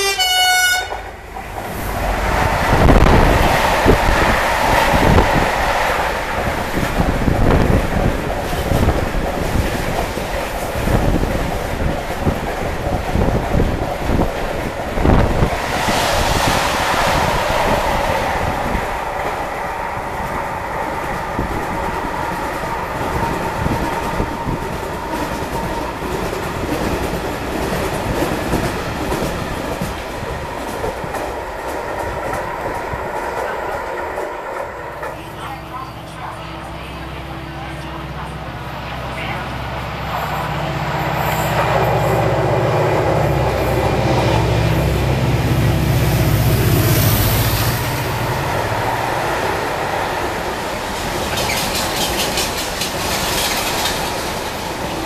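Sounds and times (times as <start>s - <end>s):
freight train wheels clattering: 46.0s - 55.0s.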